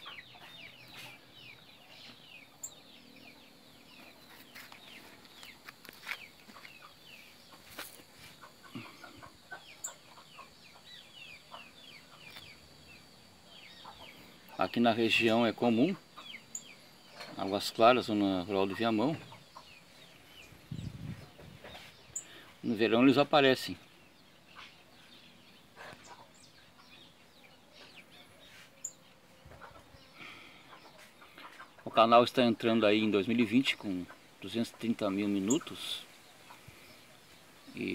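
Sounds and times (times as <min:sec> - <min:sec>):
bird chirps: 0:00.0 - 0:37.9.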